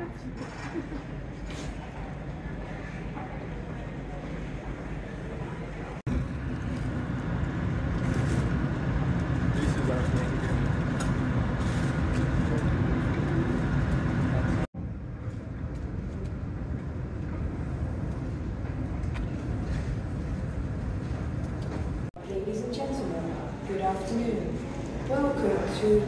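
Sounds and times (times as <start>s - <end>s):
murmur of distant voices: 0.0s - 6.7s, 9.0s - 20.5s.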